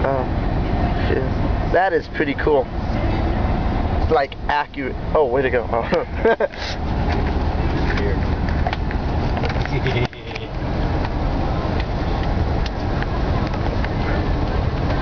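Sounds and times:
road and engine noise in cabin: 0.0s - 15.0s.

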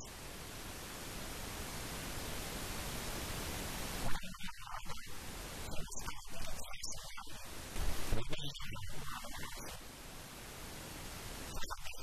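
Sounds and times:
static hiss: 0.0s - 12.0s.

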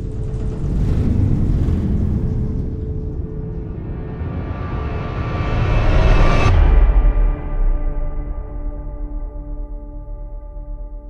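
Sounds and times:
dark ominous music: 0.0s - 11.0s
deep low rumble: 0.0s - 11.0s.

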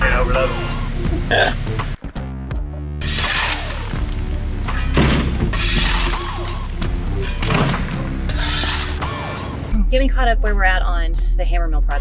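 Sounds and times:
shovel scraping concrete: 5.6s - 6.6s, 7.2s - 9.6s.

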